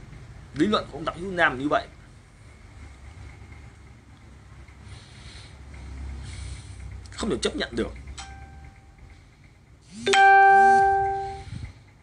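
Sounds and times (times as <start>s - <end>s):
chime ding: 10.0s - 11.4s.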